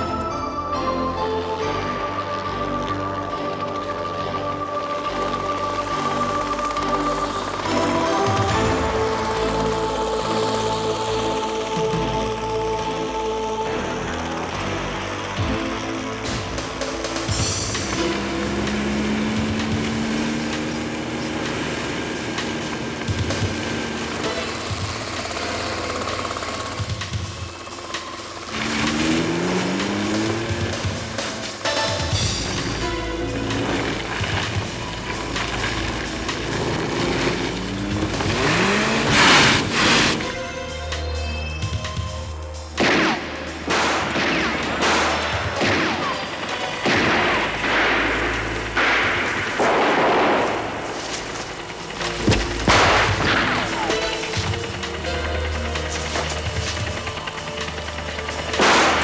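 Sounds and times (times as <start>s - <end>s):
dramatic action music: 0.0s - 59.0s
car driving fast: 1.6s - 41.0s, 42.6s - 59.0s
gunshots: 42.8s - 54.6s, 58.5s - 59.0s.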